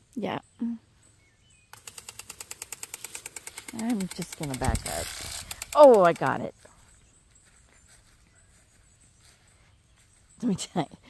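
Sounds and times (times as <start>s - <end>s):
impact sprinkler ticking: 1.7s - 6.5s
faint bird chirps: 6.5s - 11.0s.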